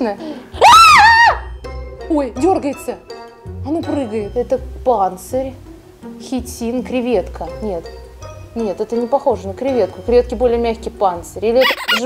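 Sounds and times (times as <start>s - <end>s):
woman shrieking: 0.6s - 1.5s, 11.6s - 12.0s.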